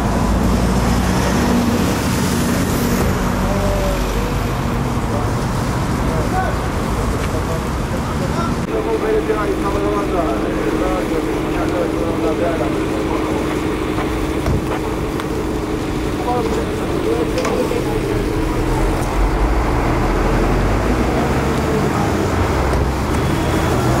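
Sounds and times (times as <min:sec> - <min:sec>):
vehicle engine running: 0:00.0 - 0:24.0
indistinct talk of bystanders: 0:00.4 - 0:24.0.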